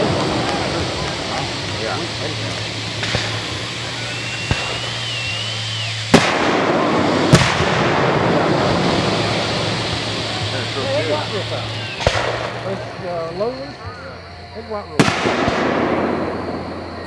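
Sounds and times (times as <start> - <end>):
firework bangs: 0.0 - 17.0
firework whistle: 0.0 - 17.0
noisy rush: 0.0 - 17.0
steady low hum: 0.0 - 17.0.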